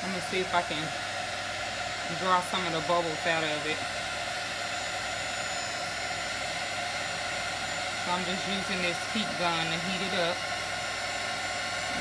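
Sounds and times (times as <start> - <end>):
heat gun blowing hum: 0.0 - 12.0.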